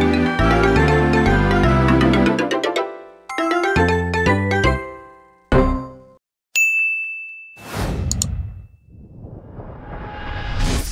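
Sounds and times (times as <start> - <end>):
bright ding: 6.6 - 8.9
whoosh: 7.6 - 10.9.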